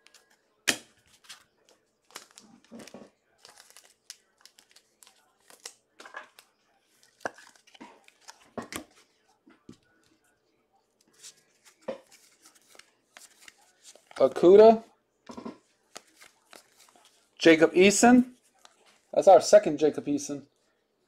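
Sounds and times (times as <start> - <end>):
cards being handled: 0.0 - 10.2, 11.0 - 14.7, 15.6 - 17.4
wrapper crinkling and tearing: 2.1 - 5.8.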